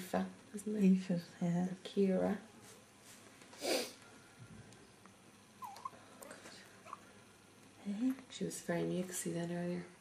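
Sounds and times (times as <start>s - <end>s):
newborn baby squeaking: 5.6s - 6.0s.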